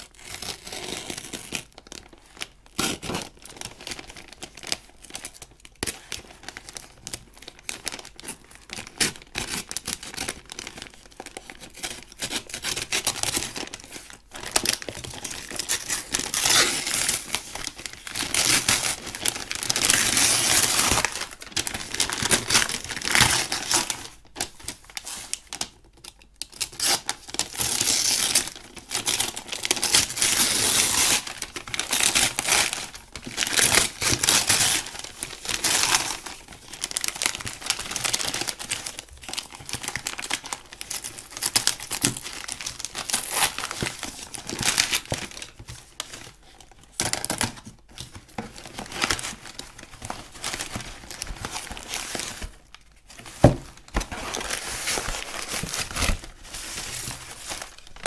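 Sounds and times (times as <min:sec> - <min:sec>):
paper tearing and crumpling: 0:53.2 - 0:58.0.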